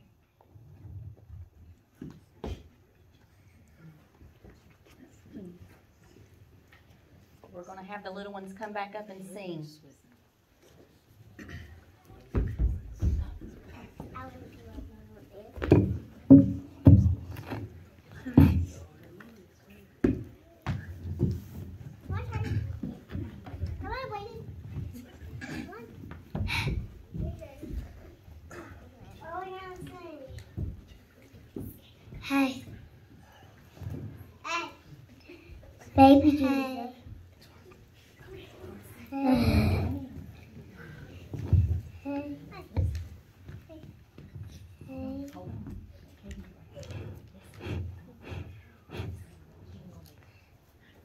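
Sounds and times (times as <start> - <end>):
children talking quietly: 0.0 - 51.0.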